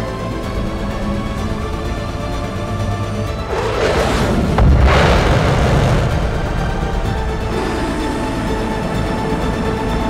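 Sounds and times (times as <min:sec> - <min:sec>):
orchestral film music: 0:00.0 - 0:10.0
sharp crack and deep boom: 0:01.2 - 0:08.3
jet whoosh: 0:03.2 - 0:07.9.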